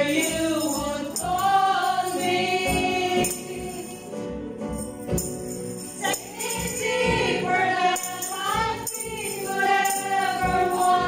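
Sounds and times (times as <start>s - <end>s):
women singing worship song: 0.0s - 4.2s, 6.0s - 11.0s
musical accompaniment: 0.0s - 11.0s
tambourine jingles: 0.0s - 11.0s.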